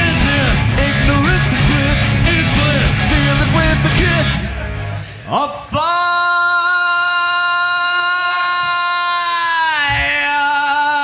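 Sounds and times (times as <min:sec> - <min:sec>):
man singing a long high note: 0:05.2 - 0:11.0.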